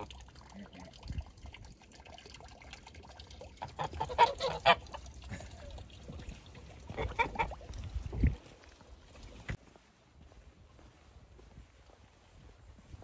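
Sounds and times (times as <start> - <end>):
geese honking: 3.6 - 5.0.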